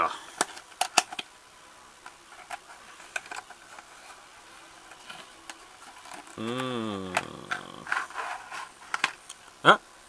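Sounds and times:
card and plastic clicks and scrapes: 0.2s - 1.3s, 2.0s - 9.4s.

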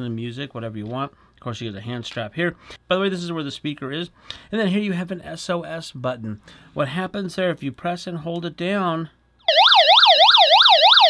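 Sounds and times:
warbling siren alarm: 9.4s - 11.0s.

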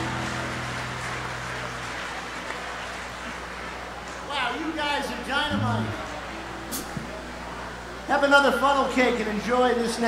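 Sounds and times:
band's low held chord: 0.0s - 2.3s, 5.5s - 8.0s
audience applause: 0.0s - 6.4s.

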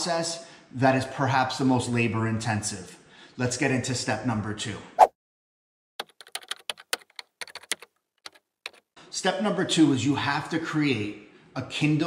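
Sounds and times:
keyboard typing clicks: 6.0s - 8.8s.

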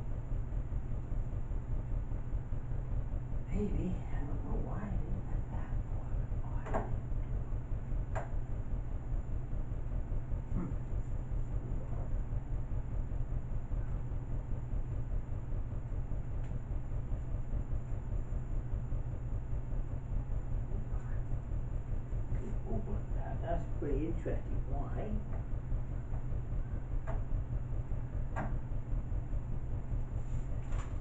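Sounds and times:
steady low rumble: 0.0s - 31.0s.

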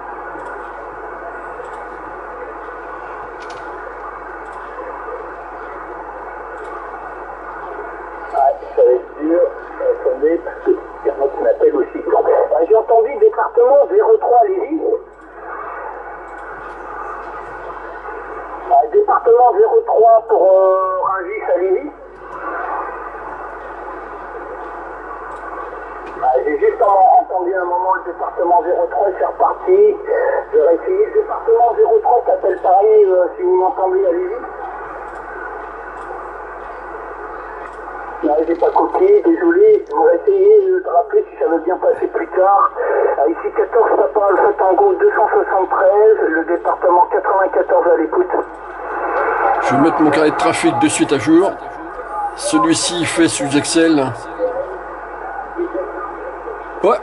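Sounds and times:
tinny radio voices: 38.2s - 57.0s.

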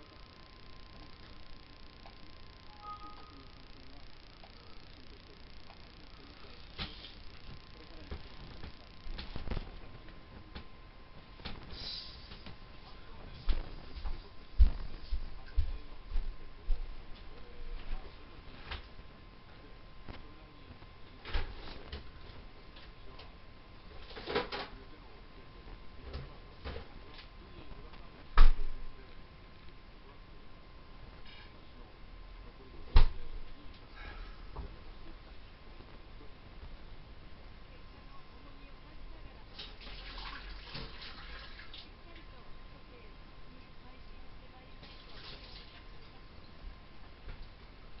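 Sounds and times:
steady hiss: 11.4s - 15.2s
muffled woman speaking on television: 41.6s - 46.6s.

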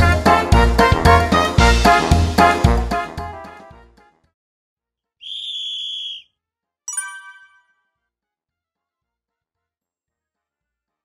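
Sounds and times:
background music: 0.0s - 4.3s.

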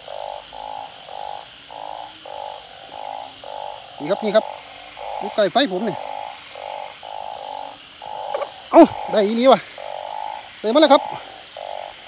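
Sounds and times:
frogs croaking: 0.0s - 12.0s.

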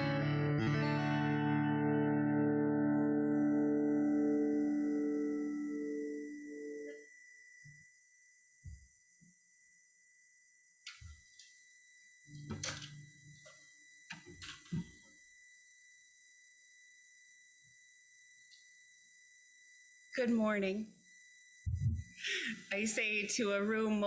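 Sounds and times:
faint high whine: 0.0s - 24.0s.

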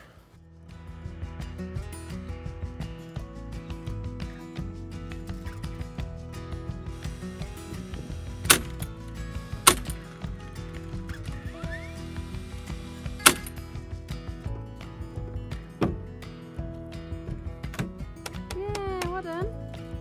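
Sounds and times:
background music: 0.0s - 20.0s
nail gun firing: 7.0s - 8.9s, 9.6s - 10.0s, 11.8s - 13.6s.

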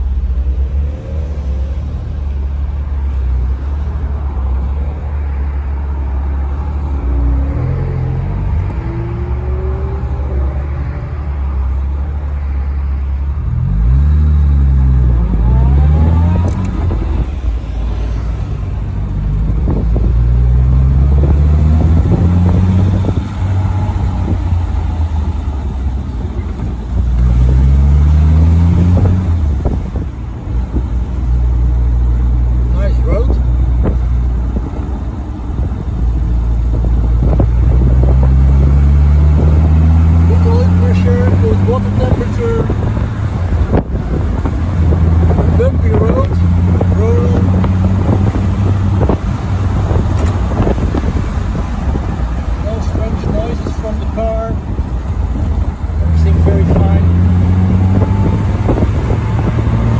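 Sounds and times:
car engine accelerating through gears: 0.0s - 12.6s, 13.4s - 59.9s.

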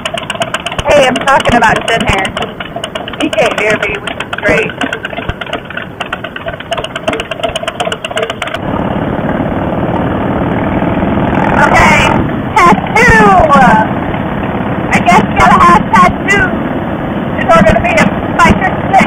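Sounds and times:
motorcycle engine running: 0.0s - 19.0s.

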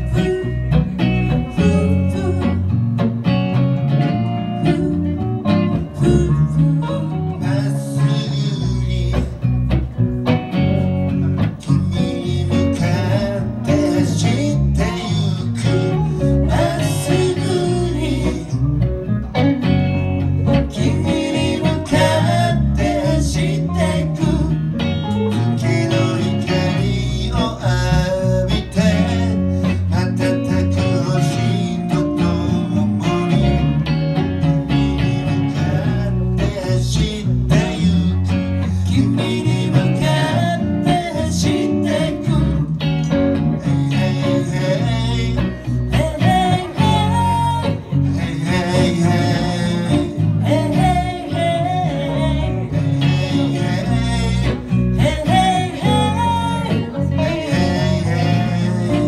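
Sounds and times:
acoustic guitar: 0.0s - 59.0s
bass guitar: 0.0s - 59.0s
electric guitars: 0.0s - 59.0s
woman singing: 54.4s - 59.0s.

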